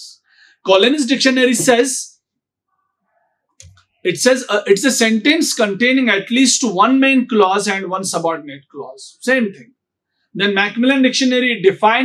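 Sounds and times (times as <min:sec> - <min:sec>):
person talking: 0:00.7 - 0:02.2, 0:10.4 - 0:12.0.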